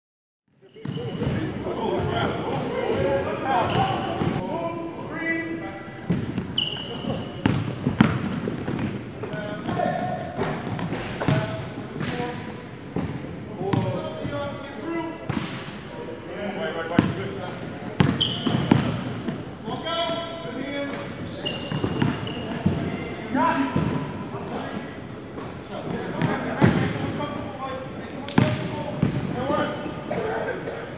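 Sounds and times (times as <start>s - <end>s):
sneaker squeaks: 0.6s - 2.7s, 3.5s - 4.4s, 6.1s - 12.4s, 18.0s - 19.3s, 20.2s - 24.0s
basketballs dribbling on gym floor: 6.1s - 12.2s, 17.9s - 19.4s
basketball bouncing on hardwood: 7.1s - 8.9s.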